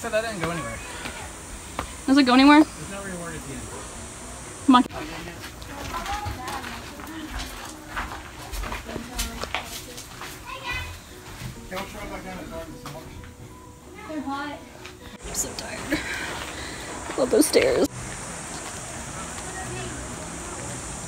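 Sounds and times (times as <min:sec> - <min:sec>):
footsteps on gravel: 0:05.4 - 0:12.0
children chattering: 0:05.6 - 0:08.5, 0:09.7 - 0:11.2, 0:18.8 - 0:21.0.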